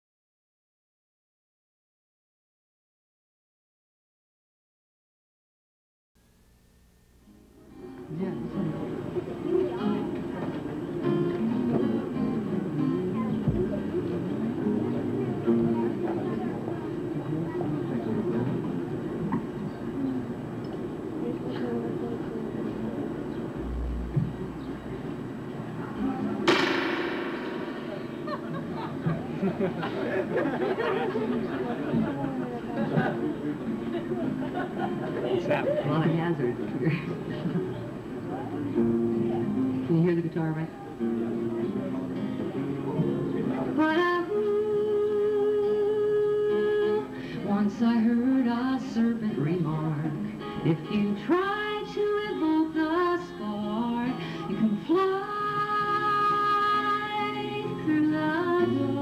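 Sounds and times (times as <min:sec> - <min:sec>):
acoustic guitar playing: 0:07.2 - 0:59.0
indistinct talking: 0:07.9 - 0:44.6
sharp knock: 0:26.5 - 0:29.2.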